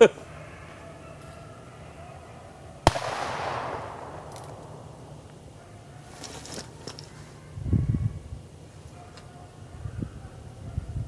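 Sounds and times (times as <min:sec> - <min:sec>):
gunshot with echo: 0:02.8 - 0:05.3.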